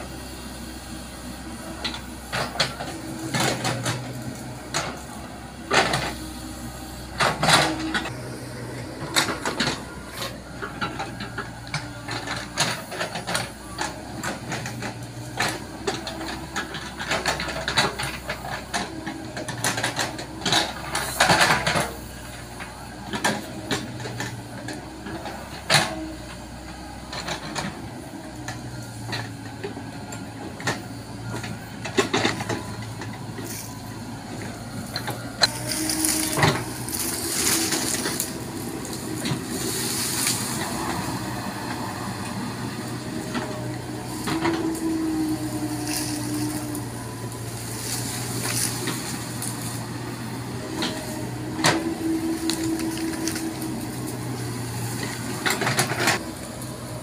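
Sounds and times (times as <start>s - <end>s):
excavator diesel engine: 0.0s - 57.0s.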